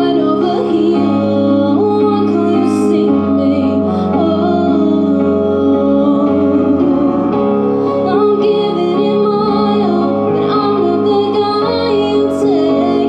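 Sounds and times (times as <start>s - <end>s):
sustained chords and bass notes: 0.0s - 13.0s
woman singing through pa system: 8.1s - 13.0s.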